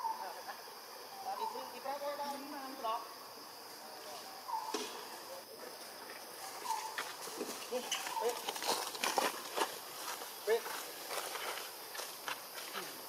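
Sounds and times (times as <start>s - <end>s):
leaves rustling: 1.4s - 13.0s.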